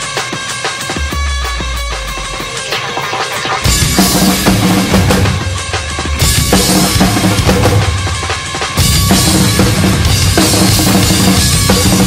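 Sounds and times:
drum kit played hard: 0:00.0 - 0:12.0
recorded metal song with guitars: 0:00.0 - 0:12.0.

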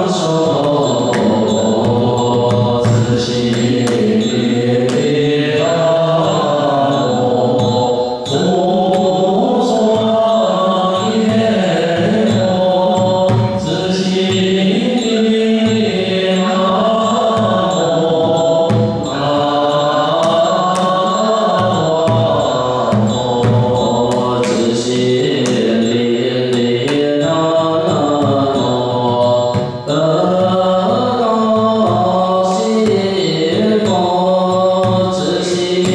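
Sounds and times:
monks chanting in unison: 0:00.0 - 0:35.9
temple drum strikes: 0:00.4 - 0:06.4, 0:11.0 - 0:15.0, 0:16.7 - 0:35.9.

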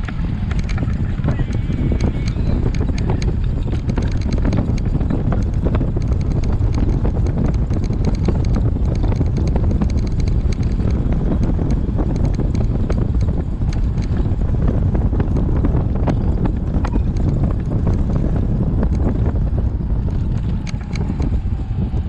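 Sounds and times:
cart rattling and clicking: 0:00.0 - 0:22.0
wind buffeting microphone: 0:00.0 - 0:22.0.

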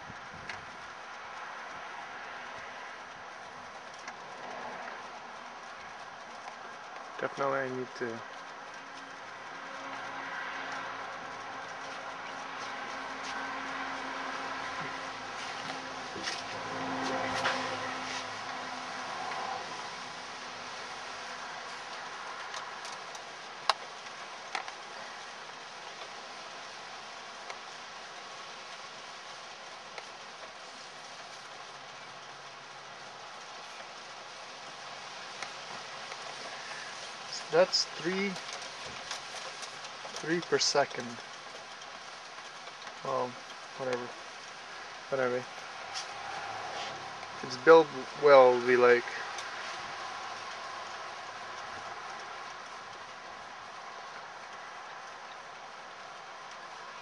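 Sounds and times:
wind noise on microphone: 0:00.0 - 0:01.0
wind turbine spinning: 0:00.0 - 0:57.0.

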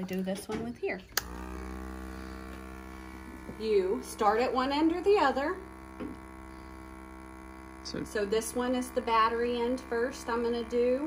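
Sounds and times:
small vacuum pump motor humming: 0:01.1 - 0:11.0.

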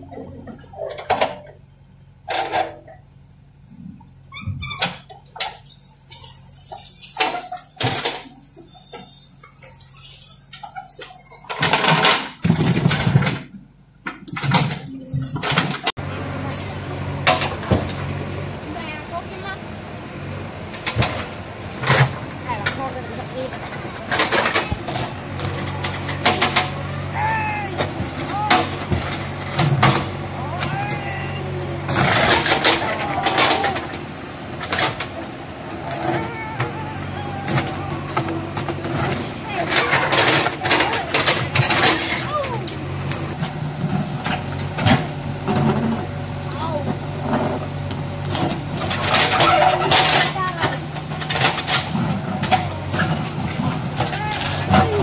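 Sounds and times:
engine running steadily: 0:00.0 - 0:55.0
short clanks and knocks: 0:00.2 - 0:01.6, 0:02.2 - 0:03.0, 0:03.6 - 0:15.9, 0:20.7 - 0:27.0, 0:27.8 - 0:35.2, 0:37.4 - 0:55.0.

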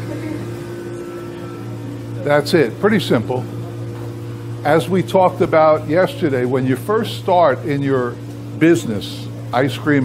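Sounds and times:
batch freezer humming: 0:00.0 - 0:10.0.

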